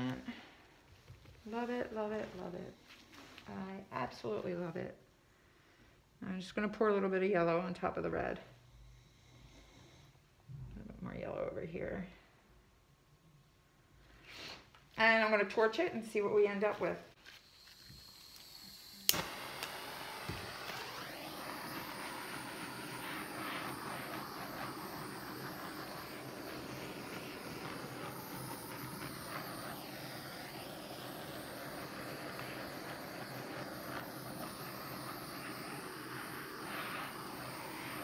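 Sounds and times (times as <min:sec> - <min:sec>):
torch flame hissing: 0:17.2 - 0:38.0
gas torch ignition click: 0:17.6 - 0:38.0.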